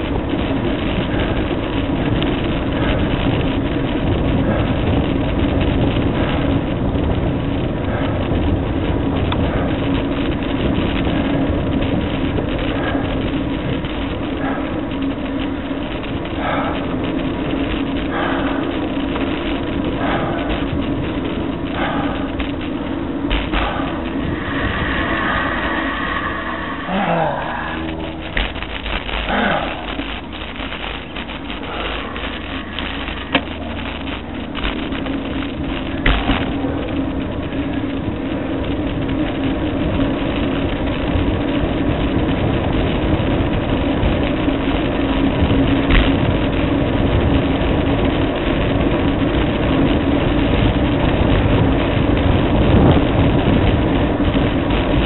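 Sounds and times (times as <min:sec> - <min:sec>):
bicycle tyres rolling on asphalt: 0:00.0 - 0:55.0
steady low hum: 0:00.0 - 0:55.0
wind rush on microphone: 0:00.0 - 0:55.0
short falling pitch sound: 0:23.4 - 0:30.3.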